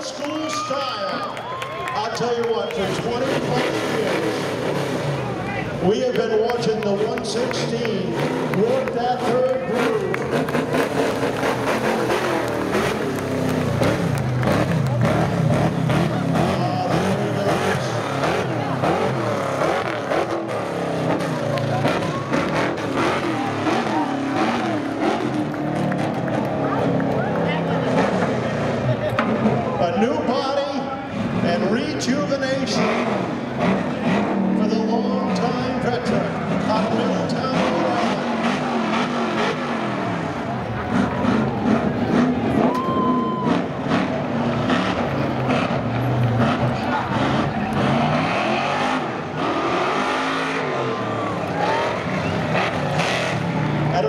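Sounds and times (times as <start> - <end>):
indistinct crowd voices: 0.0 - 54.0
race car engine running: 0.0 - 54.0.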